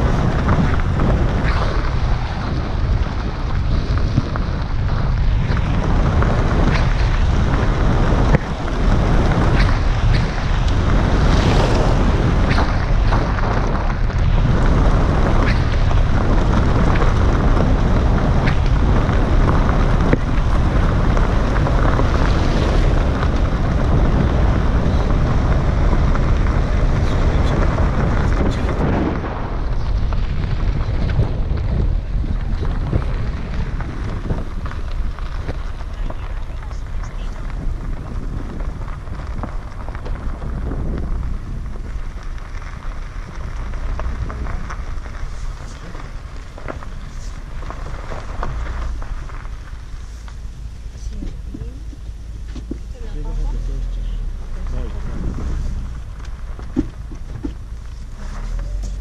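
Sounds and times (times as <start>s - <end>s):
car tyre and road noise: 0.0s - 59.0s
gravel crunching under tyres: 0.0s - 59.0s
wind on microphone: 0.0s - 59.0s.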